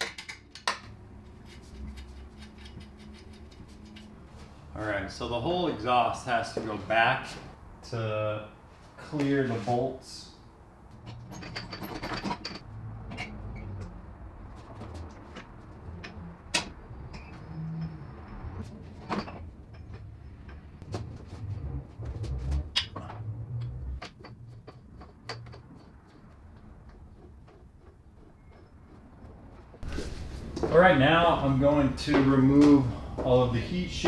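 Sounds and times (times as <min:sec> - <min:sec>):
metal exhaust knocking and clunking: 0:10.8 - 0:33.3.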